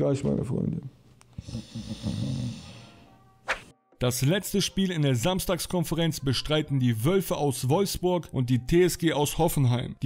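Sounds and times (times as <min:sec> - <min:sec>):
man snoring: 0:01.4 - 0:03.1.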